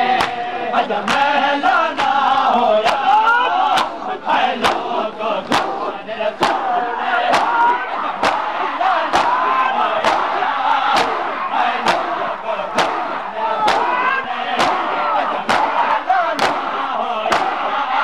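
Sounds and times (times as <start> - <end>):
crowd slapping chests: 0.0 - 18.0
men chanting: 0.0 - 18.0.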